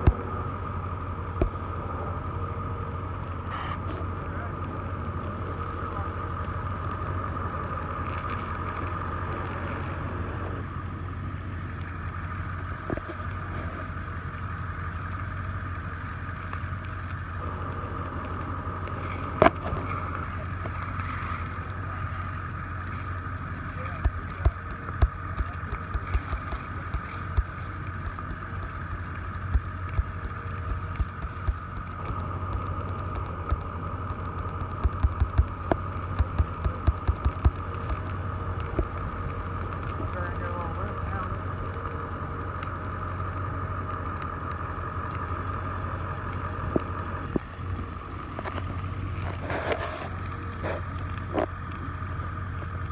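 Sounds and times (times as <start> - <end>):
fire pops and cracks: 0.0 - 52.9
steady fire drone: 0.0 - 52.9.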